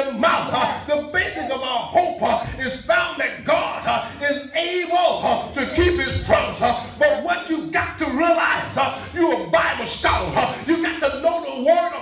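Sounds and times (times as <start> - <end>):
man preaching in sing-song chant: 0.0 - 12.0.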